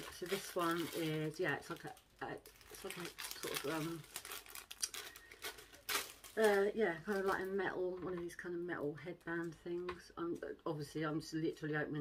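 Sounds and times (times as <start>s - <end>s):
plastic pouch crinkling: 0.0s - 7.8s.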